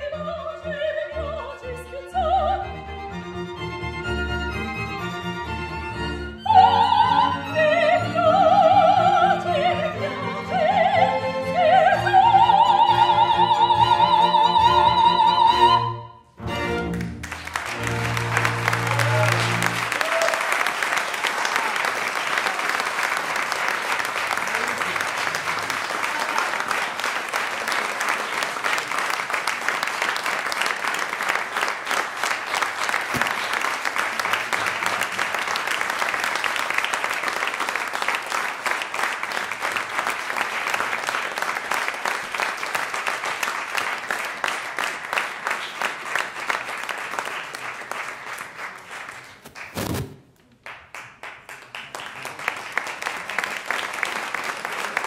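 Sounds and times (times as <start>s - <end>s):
orchestra playing: 0.0s - 20.0s
audience applauding: 16.7s - 49.8s, 50.5s - 55.0s.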